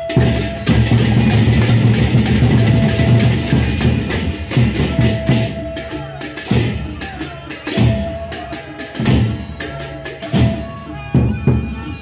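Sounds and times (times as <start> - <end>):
deep barrel drums: 0.0 - 11.8.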